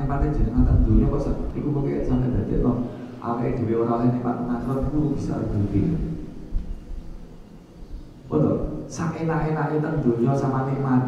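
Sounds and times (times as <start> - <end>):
low background rumble: 0.0 - 10.8.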